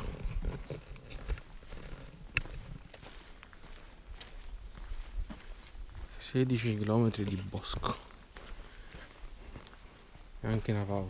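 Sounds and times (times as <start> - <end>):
footsteps on dirt path: 0.0 - 11.0.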